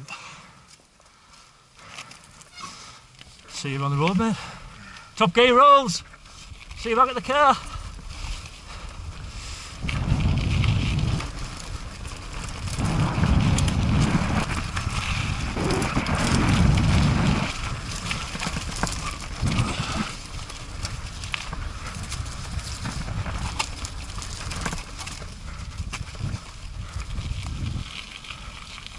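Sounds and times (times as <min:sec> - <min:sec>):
bike tyres crunching on gravel: 0:00.2 - 0:28.9
bike rattling and knocking: 0:06.0 - 0:28.9
wind rushing on camera: 0:06.2 - 0:28.9.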